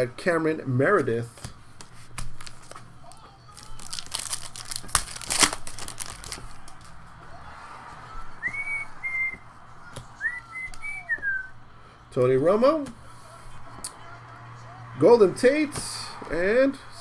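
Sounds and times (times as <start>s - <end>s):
foil wrapper crinkling and tearing: 2.2s - 6.9s
person whistling: 8.4s - 9.4s, 10.2s - 11.5s.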